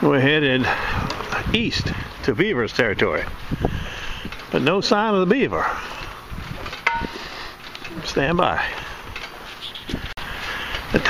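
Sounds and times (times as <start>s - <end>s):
outdoor background noise: 0.0s - 11.0s
sharp ringing click: 6.8s - 7.2s.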